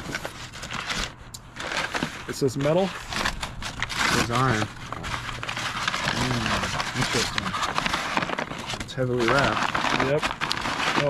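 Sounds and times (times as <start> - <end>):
paper bag crinkling: 0.0 - 11.0.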